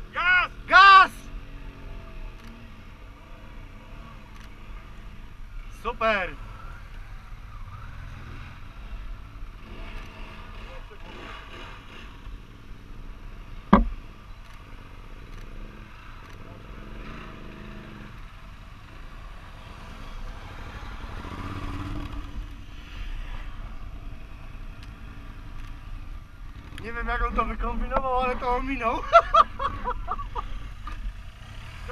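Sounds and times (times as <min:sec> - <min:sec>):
motorcycle engine running: 0:06.4 - 0:31.9
sharp knock: 0:13.7 - 0:14.0.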